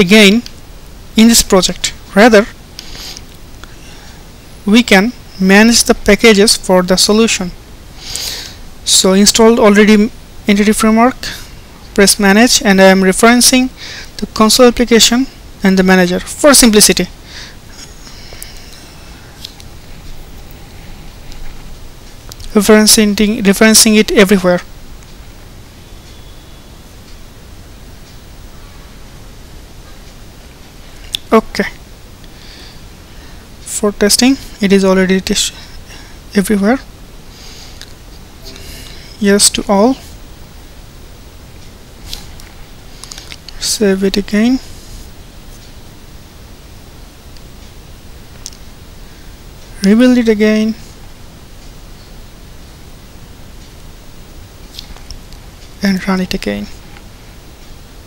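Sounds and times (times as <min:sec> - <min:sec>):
man talking: 0:00.0 - 0:00.5, 0:01.2 - 0:02.6, 0:04.6 - 0:07.6, 0:08.8 - 0:19.0, 0:22.5 - 0:24.7, 0:31.2 - 0:31.8, 0:33.6 - 0:35.7, 0:36.3 - 0:36.9, 0:38.4 - 0:40.1, 0:43.6 - 0:44.7, 0:49.8 - 0:50.8, 0:55.8 - 0:56.8
low steady hiss: 0:00.0 - 0:58.0
man sniffing: 0:02.8 - 0:03.3.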